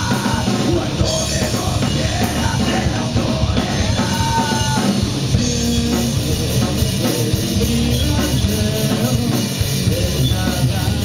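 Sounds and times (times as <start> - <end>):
drum kit beat: 0.0 - 11.0
electric guitars: 0.0 - 11.0
rock band playing live: 0.0 - 11.0.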